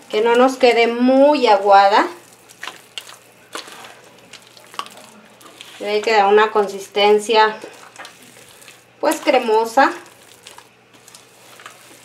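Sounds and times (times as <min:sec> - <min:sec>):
wet dough squelching: 0:00.0 - 0:12.0.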